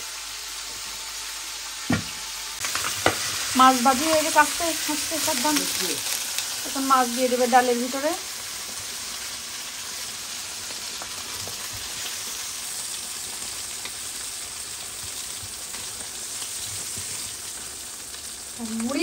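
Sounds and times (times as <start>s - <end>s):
fish sizzling in oil: 0.0s - 19.0s.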